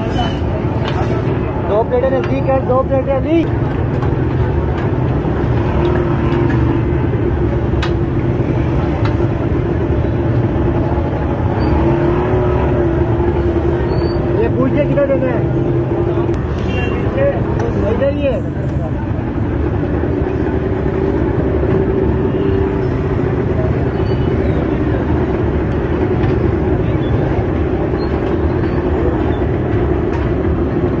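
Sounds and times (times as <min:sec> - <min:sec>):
traffic rumble: 0:00.0 - 0:31.0.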